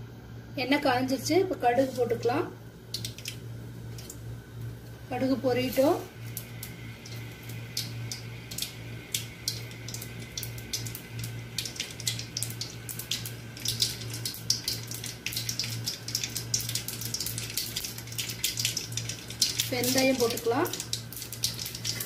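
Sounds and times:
seeds sizzling in hot oil: 0:01.0 - 0:22.0.

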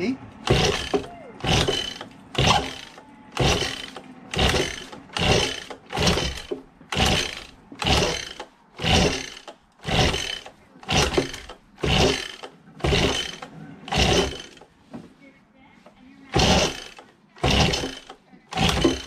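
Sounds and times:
engine turning over: 0:00.4 - 0:14.7, 0:16.3 - 0:19.0
recoil starter rope pulled: 0:00.4 - 0:14.8, 0:16.2 - 0:19.0.

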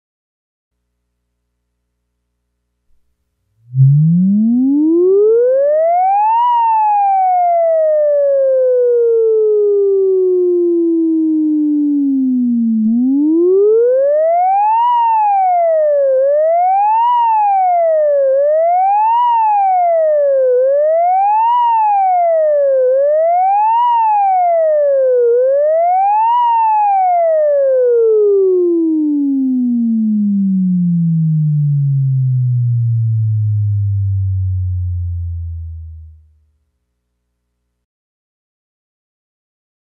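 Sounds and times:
synthesizer note gliding like a siren: 0:03.6 - 0:36.5.

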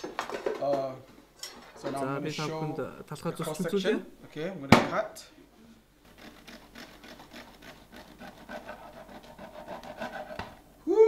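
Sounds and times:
bread knife sawing through loaf: 0:06.1 - 0:10.6.

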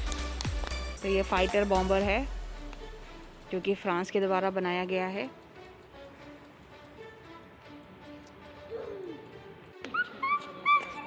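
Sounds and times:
faint background music: 0:00.0 - 0:11.0
high-pitched yips: 0:09.8 - 0:11.0.

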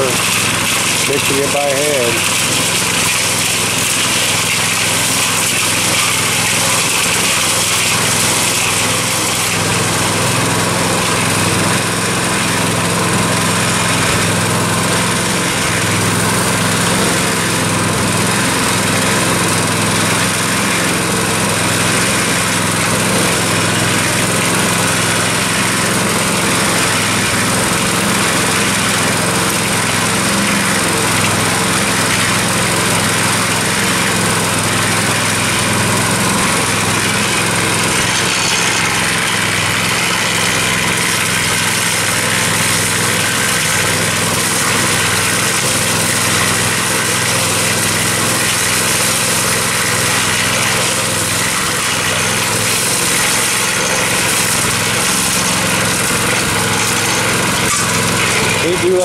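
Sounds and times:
cement mixer drum turning concrete: 0:00.0 - 0:59.0
small gasoline engine running: 0:00.0 - 0:59.0.

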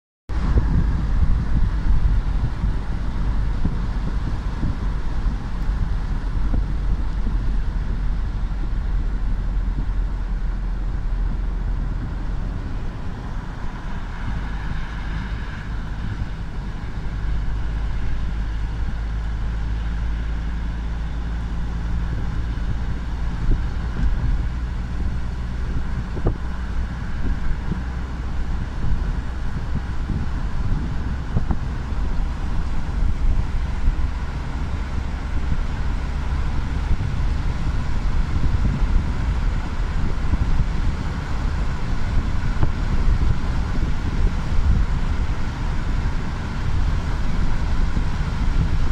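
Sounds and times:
car road and engine rumble: 0:00.3 - 0:48.9.

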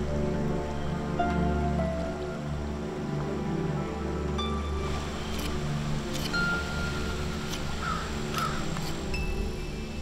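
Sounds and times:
low music bed: 0:00.0 - 0:10.0
crow cawing: 0:07.8 - 0:08.7.

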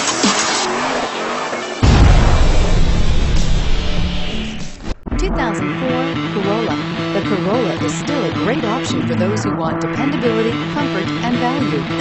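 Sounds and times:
deep bass hit: 0:01.8 - 0:05.6
electronic music: 0:01.8 - 0:12.0.

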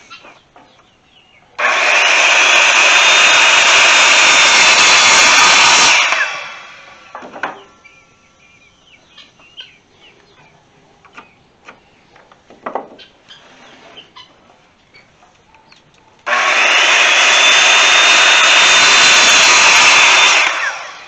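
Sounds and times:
circular saw cutting wood: 0:01.6 - 0:07.3, 0:16.2 - 0:21.0.

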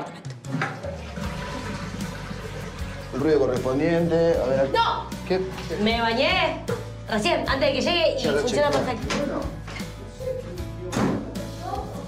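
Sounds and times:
toilet flushing: 0:00.4 - 0:04.8.

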